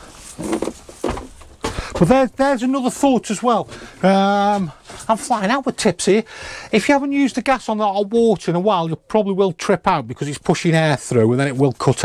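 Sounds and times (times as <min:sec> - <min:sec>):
footsteps climbing a step: 0:00.1 - 0:02.3.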